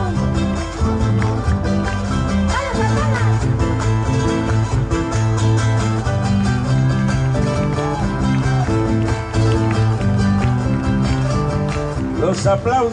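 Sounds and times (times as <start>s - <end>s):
live band music: 0.0s - 12.9s.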